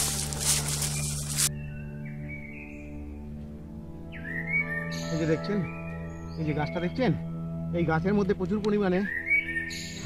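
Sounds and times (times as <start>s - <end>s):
dry leaves rustling and crackling: 0.0s - 1.5s
music with sustained low tones: 0.0s - 10.0s.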